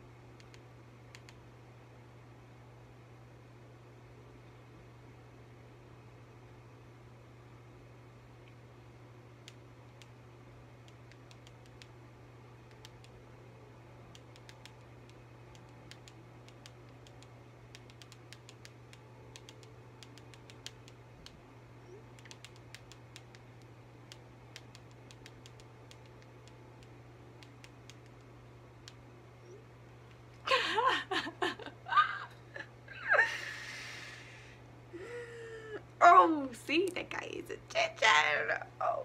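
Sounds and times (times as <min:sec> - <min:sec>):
low hum: 0:00.0 - 0:37.8
typing taps on touchscreen: 0:17.8 - 0:21.0, 0:24.6 - 0:26.3.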